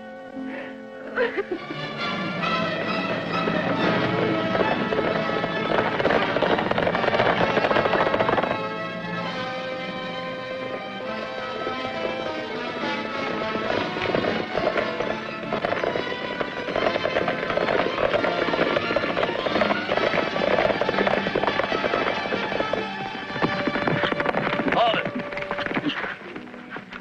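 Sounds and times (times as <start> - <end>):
orchestral film music: 0.0 - 27.0
horses galloping hoofbeats: 1.2 - 27.0.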